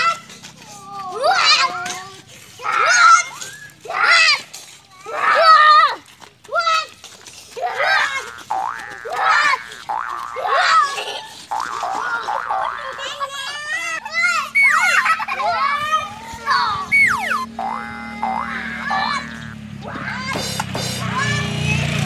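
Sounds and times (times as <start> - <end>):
children shouting and squealing: 0.0 - 22.0
cartoon boing sound effects: 8.3 - 10.9, 11.5 - 13.0, 17.0 - 19.6.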